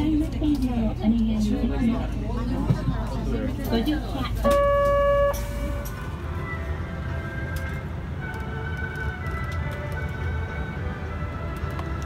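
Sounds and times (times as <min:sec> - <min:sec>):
electronic buzzer tone: 0:04.4 - 0:05.9.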